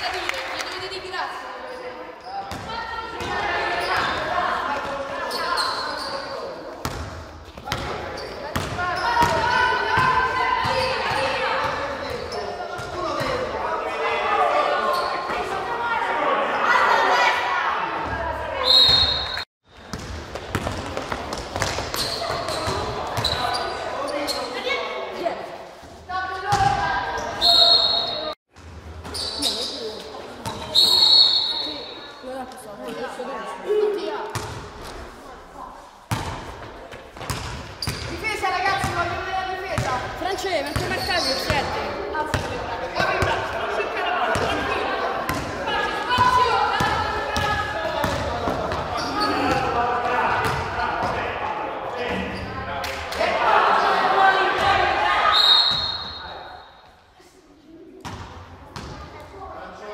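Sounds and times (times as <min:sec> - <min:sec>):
many voices echoing: 0:00.0 - 0:18.7, 0:29.4 - 0:59.9
basketball bouncing on court: 0:02.5 - 0:03.4, 0:06.8 - 0:11.8, 0:19.8 - 0:23.4, 0:36.1 - 0:36.4, 0:37.2 - 0:40.1, 0:40.7 - 0:43.4, 0:46.2 - 0:48.9, 0:50.4 - 0:51.2, 0:58.0 - 0:59.0.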